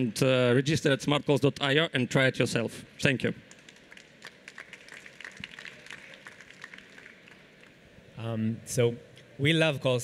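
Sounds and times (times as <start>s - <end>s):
audience applause: 3.5s - 7.7s.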